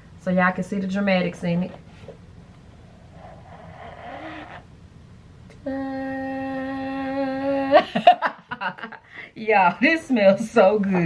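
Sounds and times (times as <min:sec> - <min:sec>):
woman laughing: 0:07.5 - 0:09.2.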